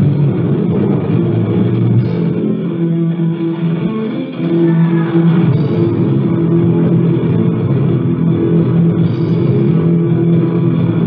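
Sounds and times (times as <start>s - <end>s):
distorted guitar and bass chord: 0.0s - 11.0s
punk band playing live: 0.0s - 11.0s.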